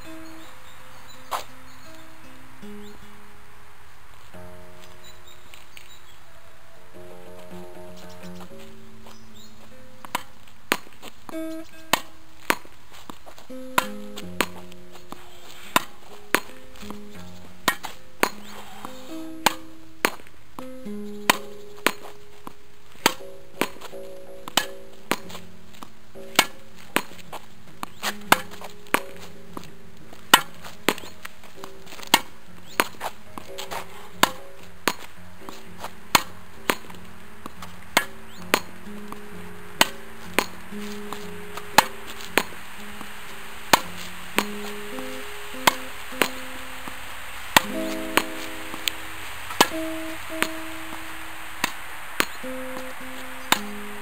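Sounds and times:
quiet background music: 0:00.0 - 0:54.0
tennis ball pops off racket and wall: 0:10.0 - 0:12.7, 0:13.7 - 0:17.0, 0:17.6 - 0:20.7, 0:21.3 - 0:22.1, 0:26.3 - 0:27.3, 0:28.0 - 0:29.7, 0:30.3 - 0:43.1, 0:43.7 - 0:47.0, 0:47.6 - 0:53.9.

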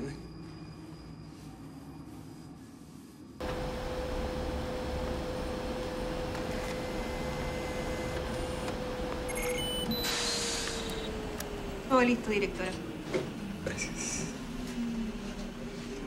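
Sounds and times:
electronic machine hum: 0:03.4 - 0:12.1
short electronic beeps: 0:09.3 - 0:11.0.

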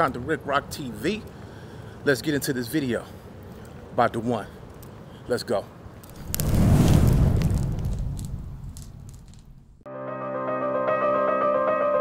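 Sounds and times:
light crackle: 0:00.0 - 0:09.8
cinematic boom with deep rumble: 0:06.2 - 0:09.7.

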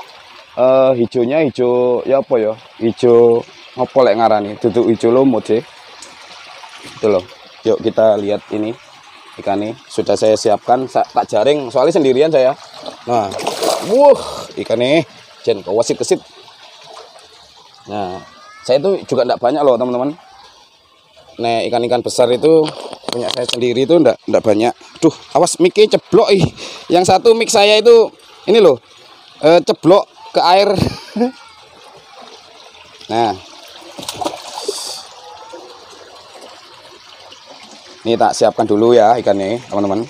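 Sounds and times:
water trickling into pond: 0:00.0 - 0:40.0.

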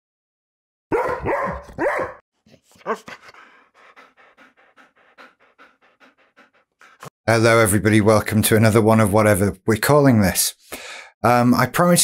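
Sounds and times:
dog barking: 0:00.9 - 0:02.2, 0:02.8 - 0:03.4.

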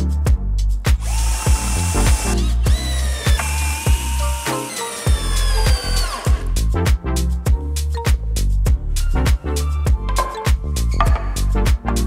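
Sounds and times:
background music with steady beat: 0:00.0 - 0:12.0
cordless drill motor whine: 0:01.0 - 0:06.5.

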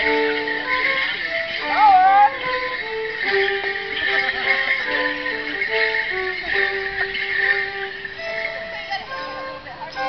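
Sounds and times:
folk dance tune: 0:00.0 - 0:10.0
leg bells jingling: 0:00.0 - 0:10.0.

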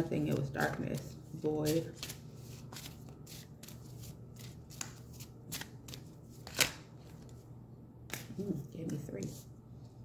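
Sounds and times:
cards being shuffled: 0:00.3 - 0:07.4, 0:08.1 - 0:08.5.

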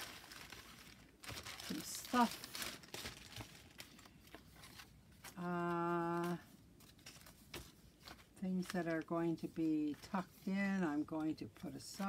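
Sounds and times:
paper rustling: 0:00.0 - 0:12.0.

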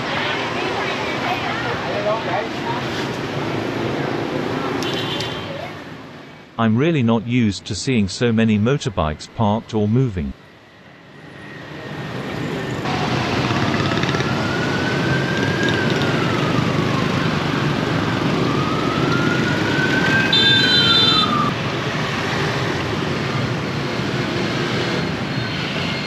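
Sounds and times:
motorbike and car traffic: 0:00.0 - 0:06.7, 0:09.9 - 0:26.0
siren wailing: 0:12.9 - 0:21.6.

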